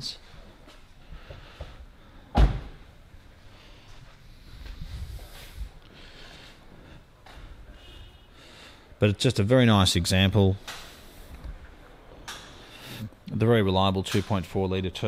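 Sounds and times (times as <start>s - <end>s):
faint low rumbling: 0.0s - 8.4s
car door slamming shut: 2.3s - 2.8s.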